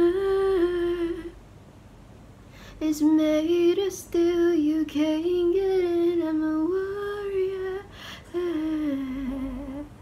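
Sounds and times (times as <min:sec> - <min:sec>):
woman singing unaccompanied: 0:00.0 - 0:01.4, 0:02.8 - 0:10.0
breath: 0:02.5 - 0:02.8, 0:07.9 - 0:08.3.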